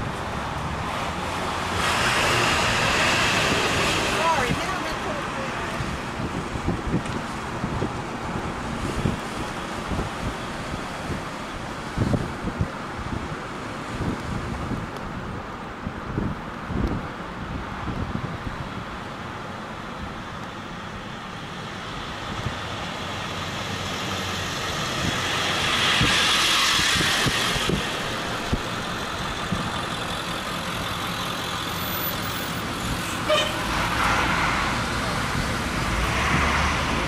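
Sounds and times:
road vehicle rush: 0.0s - 37.0s.

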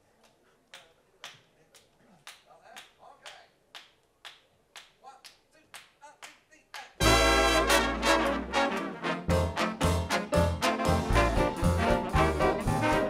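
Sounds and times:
finger snaps in steady beat: 0.2s - 7.0s.

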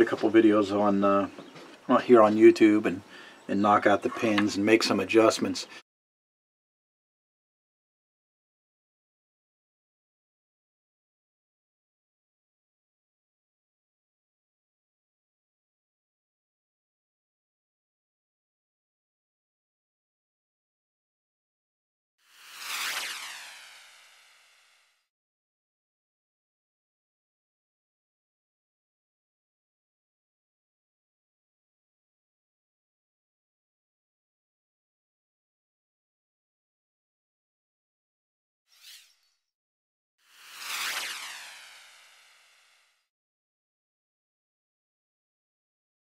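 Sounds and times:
whoosh with downward sliding tones: 22.3s - 25.0s, 40.3s - 43.1s.

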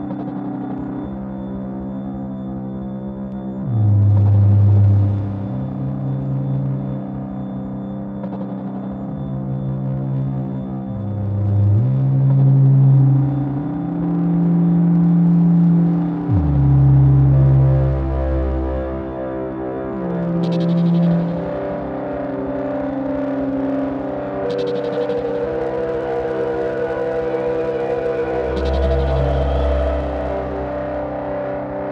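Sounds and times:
ambient synthesizer drones: 0.0s - 31.9s
deep low synth note: 3.6s - 6.0s, 14.3s - 19.2s, 27.4s - 30.7s.

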